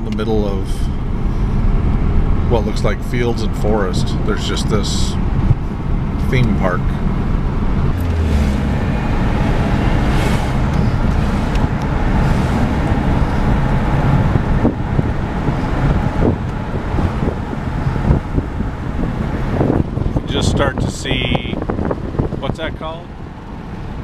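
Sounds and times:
car road noise from inside: 0.0 - 24.0.

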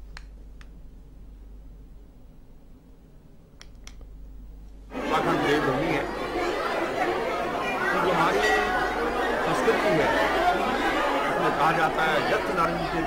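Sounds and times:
crowd chatter: 4.9 - 13.0.

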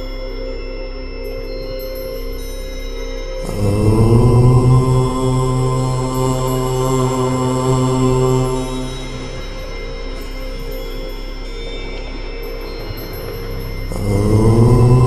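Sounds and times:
low voice chanting: 0.0 - 15.0
steady drone: 0.0 - 15.0.

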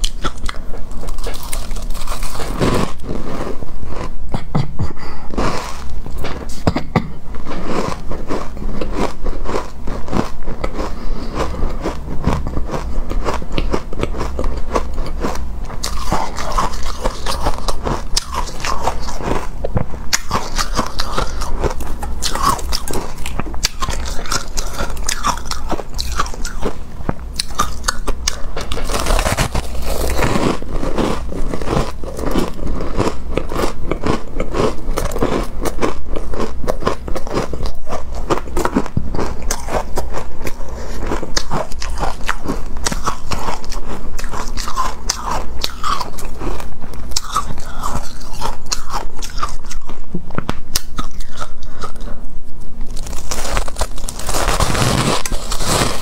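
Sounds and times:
crunching and chewing shaved ice: 0.0 - 4.4, 7.4 - 52.2, 52.8 - 56.0.

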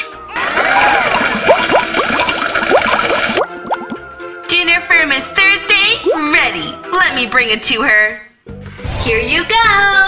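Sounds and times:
cartoon bubbling cauldron: 0.3 - 4.1, 6.0 - 6.4.

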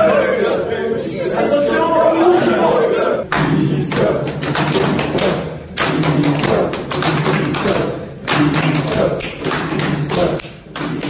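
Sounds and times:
voices chanting: 0.0 - 11.0
people clapping: 3.2 - 11.0.

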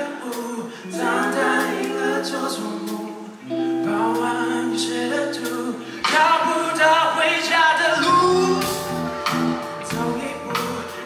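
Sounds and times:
singing voices: 0.0 - 11.0
band playing long held chords: 0.8 - 11.0.

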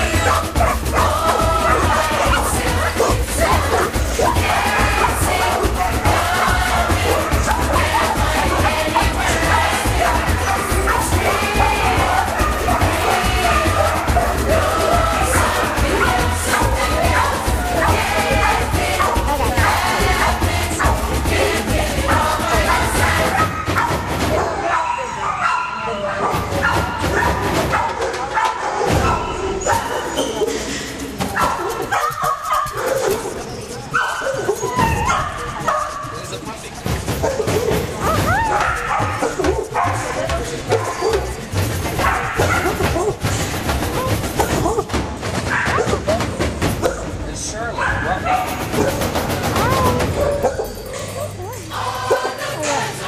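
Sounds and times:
music soundtrack: 0.0 - 24.4
dogs barking: 0.0 - 53.0.

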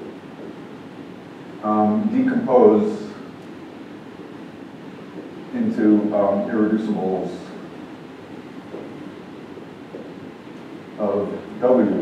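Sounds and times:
faint room hiss and hum: 0.0 - 12.0.

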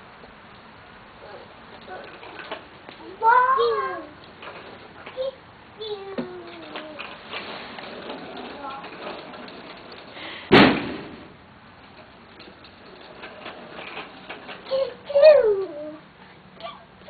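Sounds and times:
bicycle rattling on concrete: 0.0 - 17.0
child's voice: 3.0 - 4.2, 5.0 - 7.1, 8.4 - 8.9, 14.6 - 16.0, 16.6 - 16.9
loud bang: 10.5 - 11.4.

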